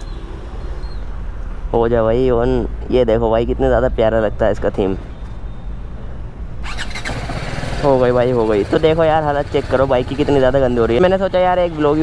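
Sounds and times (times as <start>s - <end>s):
motorcycle engine starting: 6.6s - 10.5s.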